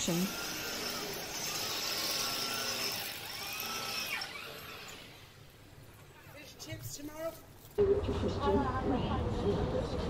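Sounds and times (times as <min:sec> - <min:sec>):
power tool whine: 0:00.0 - 0:05.5.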